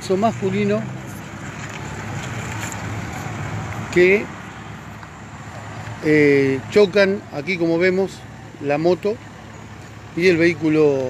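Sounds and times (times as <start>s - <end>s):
car engine rumble: 0.0s - 11.0s.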